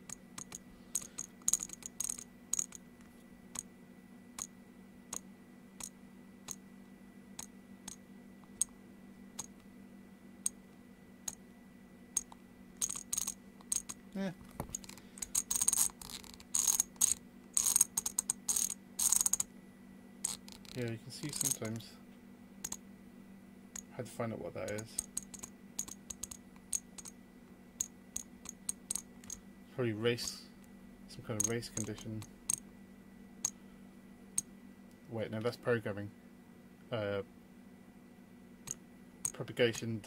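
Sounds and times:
rotary encoder clicking: 0.0s - 2.8s, 7.4s - 8.7s, 12.2s - 14.0s, 14.6s - 19.5s, 20.2s - 21.8s, 24.6s - 27.2s, 27.8s - 29.4s, 31.4s - 32.6s.

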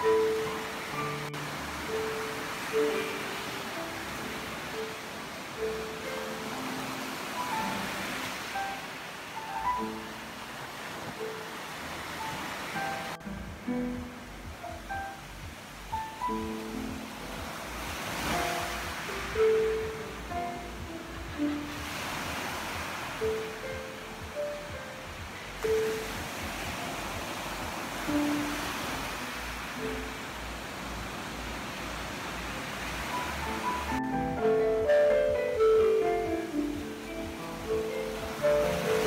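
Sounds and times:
ocean surf: 0.0s - 39.0s
slow piano improvisation: 0.0s - 39.0s.

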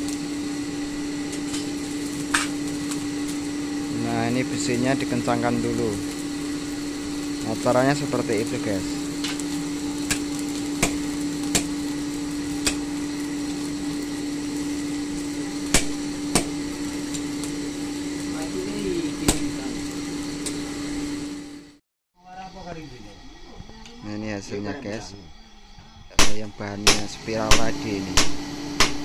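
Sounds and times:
forge blower motor hum: 0.0s - 29.0s.

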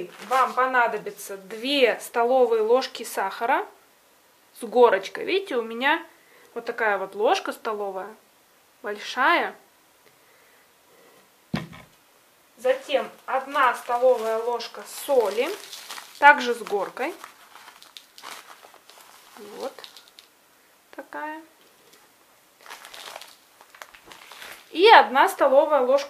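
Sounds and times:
plastic bag rustling and crinkling: 0.0s - 2.6s, 12.6s - 20.4s, 21.6s - 25.5s
kitchenware knock: 11.6s - 11.9s.

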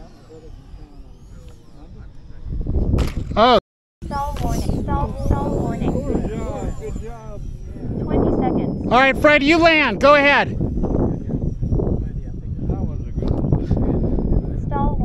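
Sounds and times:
people talking: 0.0s - 2.6s, 3.4s - 15.0s
model jet whine: 0.0s - 3.4s, 4.0s - 15.0s.

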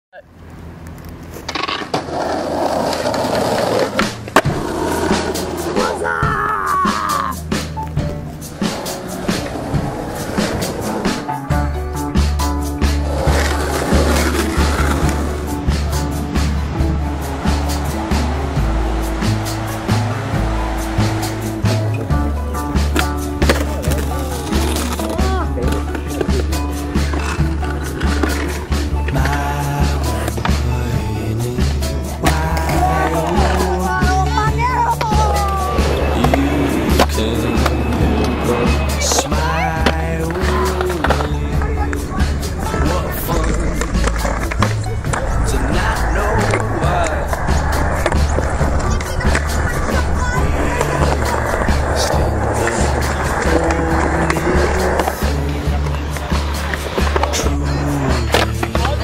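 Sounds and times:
skateboard wheels rolling on asphalt: 0.3s - 5.9s, 7.5s - 59.0s
skateboard clacks: 0.8s - 5.9s, 12.2s - 30.7s, 32.3s - 59.0s
music: 1.6s - 59.0s.

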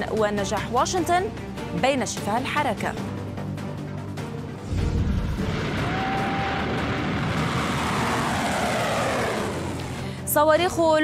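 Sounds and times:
rushing whoosh: 4.7s - 10.0s.

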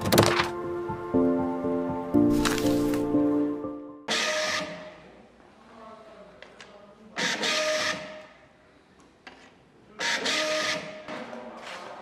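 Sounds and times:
music jingle: 0.6s - 4.1s.

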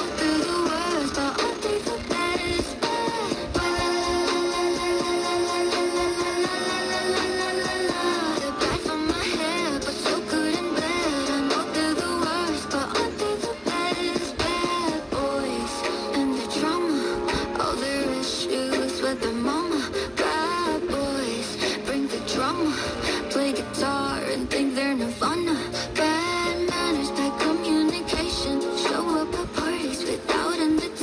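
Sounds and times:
music with singing over radio: 0.0s - 31.0s.

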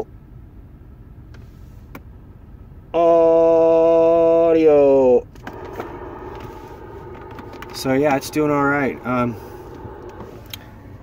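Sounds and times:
vehicle engine idling: 0.1s - 11.0s.

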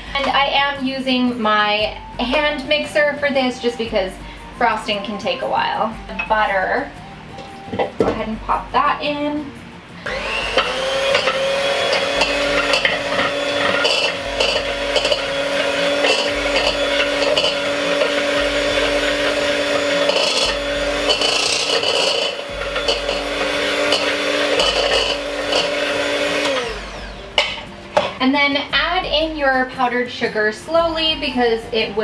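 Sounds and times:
electric hand mixer running: 10.0s - 27.6s
beaters scraping against bowl: 10.0s - 28.2s.

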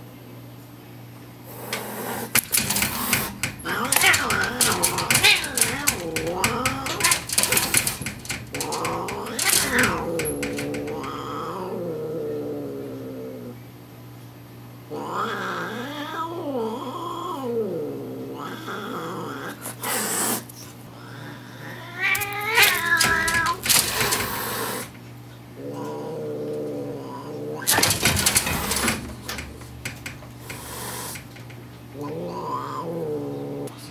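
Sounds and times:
cats hissing: 1.5s - 13.6s, 14.9s - 33.9s
cats yowling: 2.0s - 13.6s, 14.9s - 20.4s, 21.0s - 25.0s, 25.6s - 31.3s, 32.0s - 33.9s.

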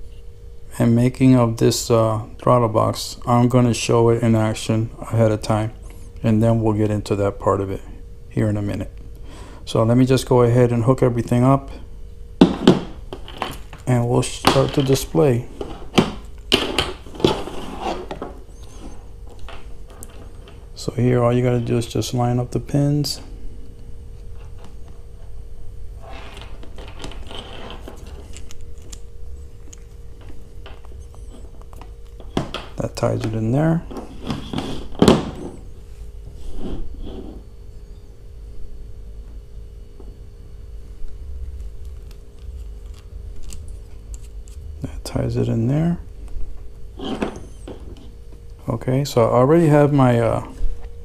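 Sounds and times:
steady hum: 0.0s - 51.0s
cable and connectors rustling: 13.1s - 20.8s, 26.0s - 35.6s, 41.6s - 44.6s
hands rustling wire: 26.0s - 32.8s.

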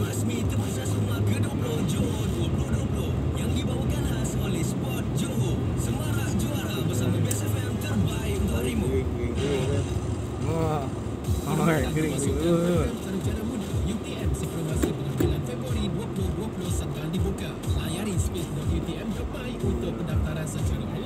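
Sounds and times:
car radio voices over music: 0.0s - 21.0s
low engine hum: 0.0s - 21.0s.

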